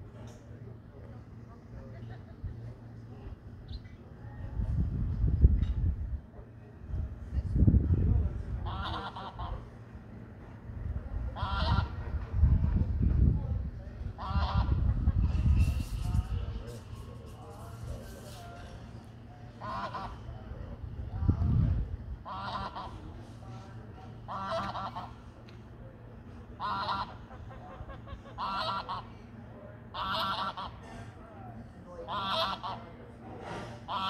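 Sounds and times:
geese honking: 0:08.7 - 0:09.6, 0:11.4 - 0:12.0, 0:14.2 - 0:14.8, 0:19.6 - 0:20.2, 0:22.2 - 0:23.0, 0:24.2 - 0:25.2, 0:26.6 - 0:29.2, 0:29.9 - 0:30.8, 0:32.1 - 0:32.8.

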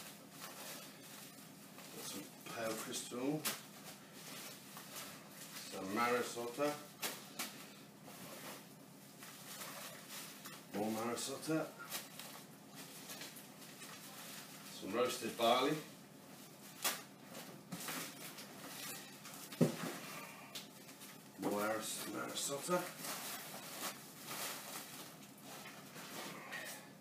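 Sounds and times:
plastic bag rustling: 0:00.0 - 0:27.0.

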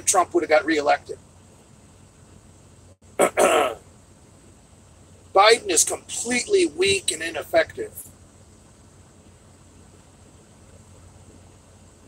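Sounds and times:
man clearing his throat: 0:03.2 - 0:03.8.

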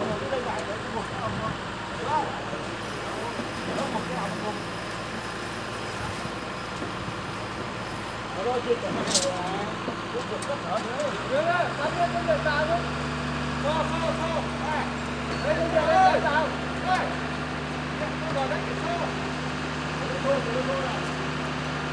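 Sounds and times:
concrete pump engine running: 0:00.0 - 0:21.9.

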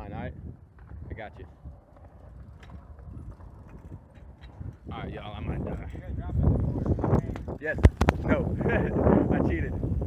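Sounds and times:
bike rolling rumble on concrete: 0:00.0 - 0:10.0
bike clicks: 0:00.6 - 0:08.7.

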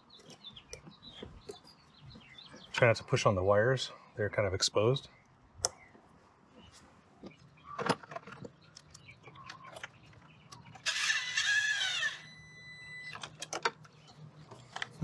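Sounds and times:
cordless drill motor whine: 0:10.8 - 0:13.2.

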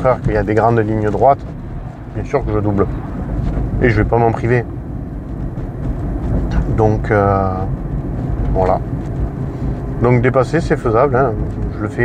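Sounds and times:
road and tyre rumble: 0:00.0 - 0:12.0
man's voice: 0:02.2 - 0:02.9.

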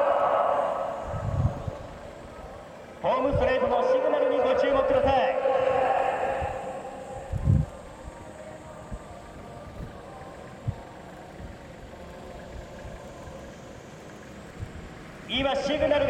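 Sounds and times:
distant race car engines running: 0:00.0 - 0:16.0.

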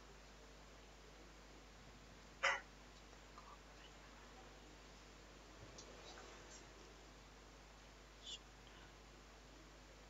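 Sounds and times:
sharp hiccup-like mouth sound: 0:02.4 - 0:02.7.

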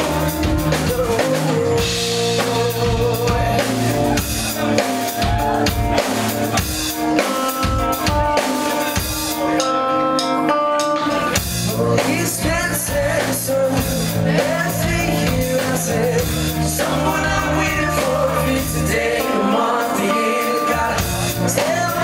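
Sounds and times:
rock band playing: 0:00.0 - 0:22.0.

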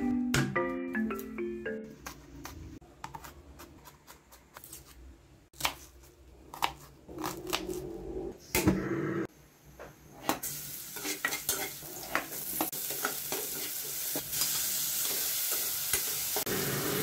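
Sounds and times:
garlic and onion sizzling in oil: 0:10.2 - 0:17.0.

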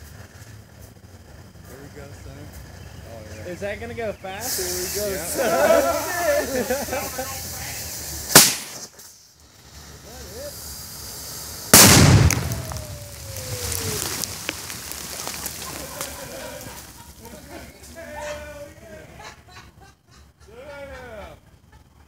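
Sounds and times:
loud firework blast rumbling: 0:04.4 - 0:08.9, 0:09.5 - 0:17.0
firework bang: 0:08.3 - 0:09.0, 0:11.6 - 0:15.7.

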